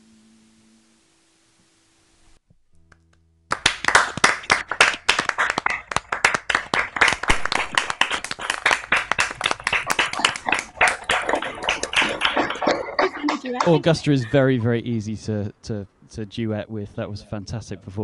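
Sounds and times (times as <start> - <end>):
hands clapping: 2.9 - 14.1.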